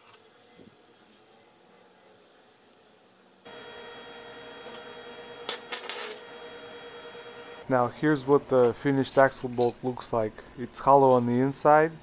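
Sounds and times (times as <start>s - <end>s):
welder humming: 3.4s - 8.7s
welding arc crackles: 5.4s - 6.2s.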